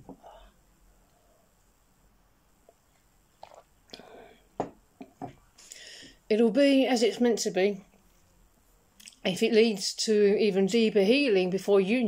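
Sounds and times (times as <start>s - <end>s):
wet mouth clicks and smacks: 3.4s - 4.0s, 9.0s - 9.2s
breathy hiss: 5.5s - 6.3s.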